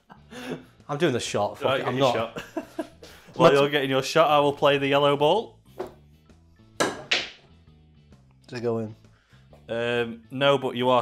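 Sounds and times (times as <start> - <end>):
faint background music: 0.0 - 11.0
snooker balls clicking: 6.8 - 7.4.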